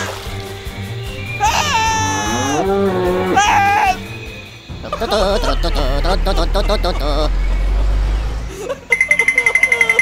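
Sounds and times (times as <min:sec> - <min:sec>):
background music with low drone: 0:00.0 - 0:10.0
comic bleat-like voice effect: 0:01.4 - 0:04.0.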